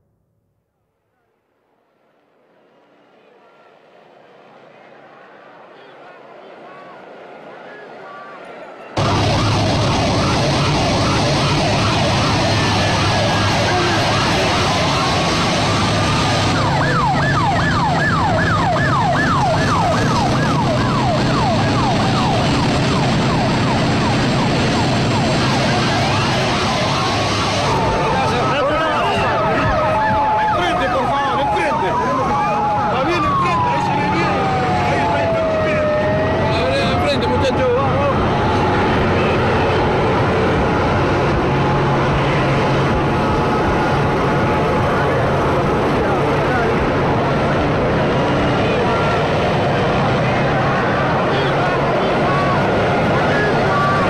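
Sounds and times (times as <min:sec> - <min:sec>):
fast yelping siren: 0:09.0 - 0:54.0
siren wail rising and falling: 0:09.0 - 0:54.0.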